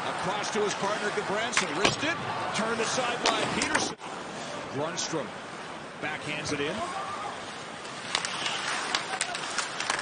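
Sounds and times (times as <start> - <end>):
hockey sticks and puck clacking: 0.1 - 2.0, 7.8 - 10.0.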